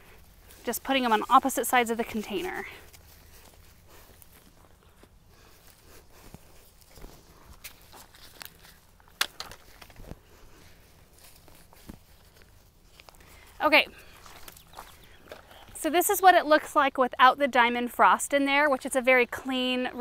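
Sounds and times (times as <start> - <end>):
footsteps: 0.0 - 16.0
rustling of plants: 0.0 - 16.9.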